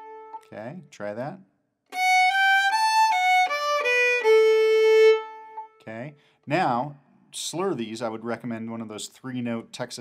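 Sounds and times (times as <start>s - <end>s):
fiddle playing reel melody: 1.9s - 5.8s.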